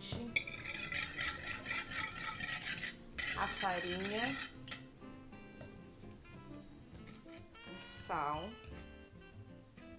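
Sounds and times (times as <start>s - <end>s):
wire whisk scraping bowl: 0.4s - 4.8s.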